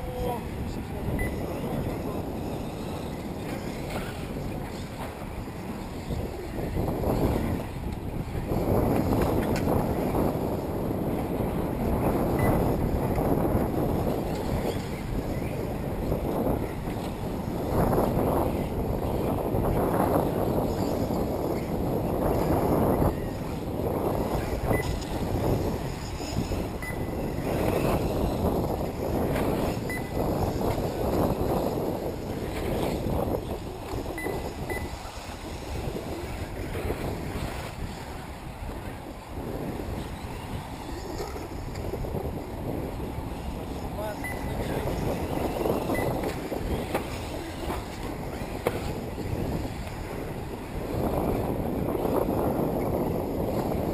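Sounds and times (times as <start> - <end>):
wind buffeting microphone: 0.0 - 53.9
faint short high beeps: 1.2 - 1.4, 29.9 - 30.2, 34.2 - 35.0, 44.2 - 44.5.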